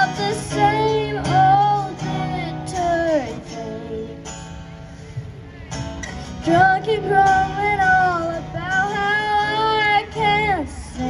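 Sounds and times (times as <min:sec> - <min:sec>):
girl and woman singing: 0:00.0 - 0:04.3, 0:06.4 - 0:11.0
strummed acoustic guitar: 0:00.0 - 0:11.0.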